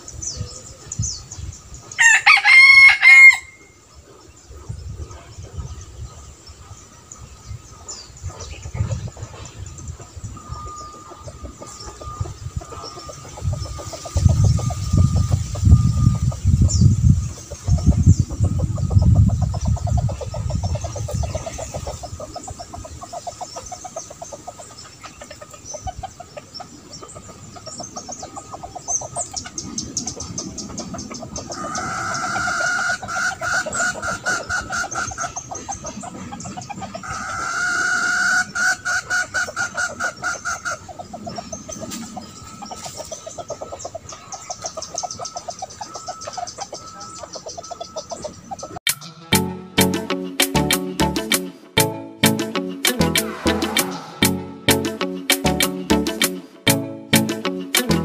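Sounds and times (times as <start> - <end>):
rooster crowing: 2.0 - 3.7
loud low rumbling: 53.0 - 54.9.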